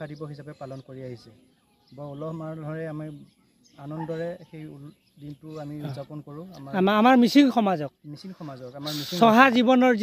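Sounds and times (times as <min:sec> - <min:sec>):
person speaking: 0:08.3 - 0:09.8
drawn-out hissing s sound: 0:08.8 - 0:09.2.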